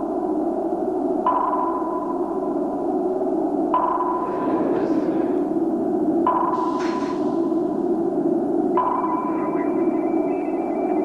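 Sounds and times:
steady low drone: 0:00.0 - 0:11.0
sonar pings: 0:01.2 - 0:02.5, 0:03.7 - 0:05.1, 0:06.2 - 0:07.6, 0:08.7 - 0:11.0.

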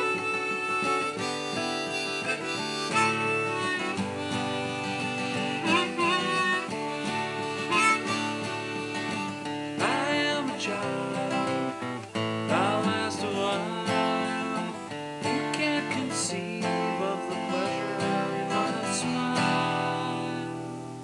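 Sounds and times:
acoustic guitar strumming: 0:00.0 - 0:21.0.

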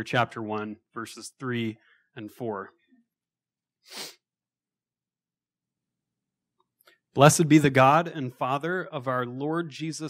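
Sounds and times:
sharp nasal breath: 0:03.8 - 0:04.2.

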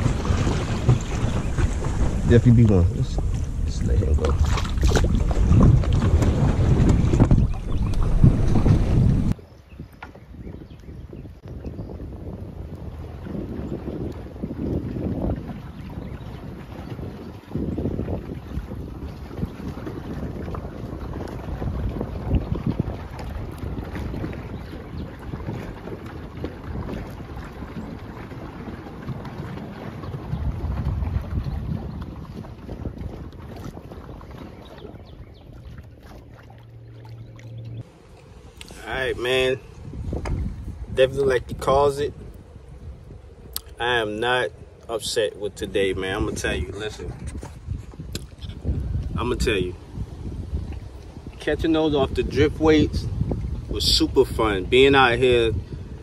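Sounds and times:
wind buffeting microphone: 0:00.0 - 0:56.0.

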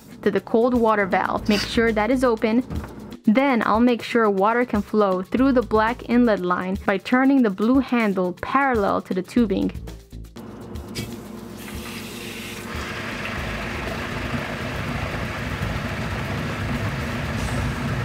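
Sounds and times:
water and air hissing through pipes: 0:10.9 - 0:18.0.

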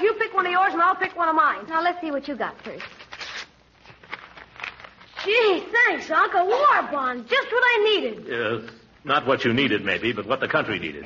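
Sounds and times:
wrapping paper crinkling: 0:02.4 - 0:05.7.

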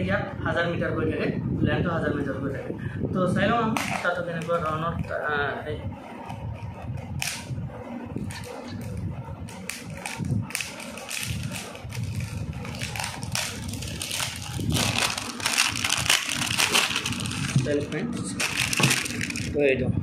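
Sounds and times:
plastic wrapping crinkling: 0:08.2 - 0:19.6.

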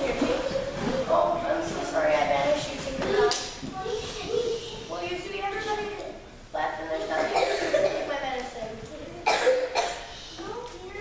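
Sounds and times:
child speaking: 0:00.0 - 0:11.0
person coughing: 0:07.2 - 0:08.1, 0:09.2 - 0:10.1.

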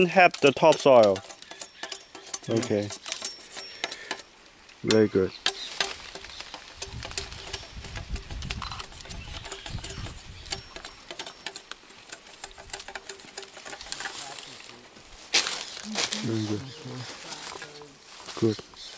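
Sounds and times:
machete scraping cane stalk: 0:05.4 - 0:14.7.

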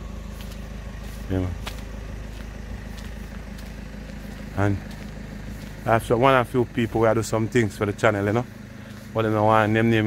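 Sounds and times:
faint footsteps on pavement: 0:00.0 - 0:10.0
road traffic rumble: 0:00.0 - 0:10.0.

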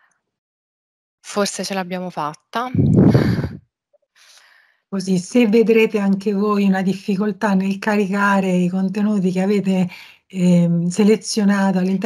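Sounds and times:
woman sighing: 0:02.8 - 0:03.6
faint short breath: 0:04.2 - 0:04.9.

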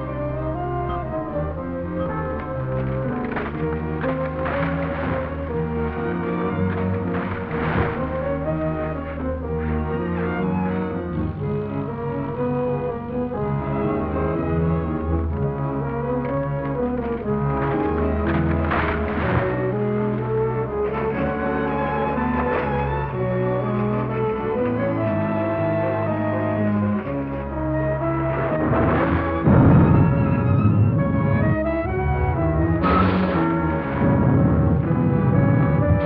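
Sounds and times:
orchestral music with brass: 0:00.0 - 0:36.0.

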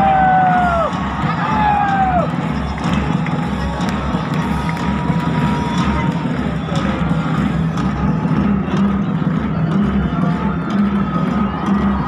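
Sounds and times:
heavy bass pulsing: 0:00.0 - 0:12.0
large crowd noise: 0:00.0 - 0:12.0
music over stadium loudspeakers: 0:00.0 - 0:12.0.

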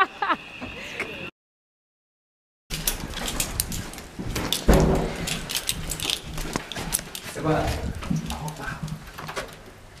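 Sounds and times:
footsteps in hallway: 0:02.7 - 0:09.5
heavy low thump: 0:04.7 - 0:05.3.

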